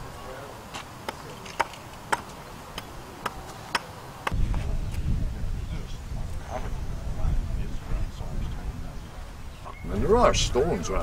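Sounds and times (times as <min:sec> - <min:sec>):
hatchet striking wood: 0:01.0 - 0:04.4.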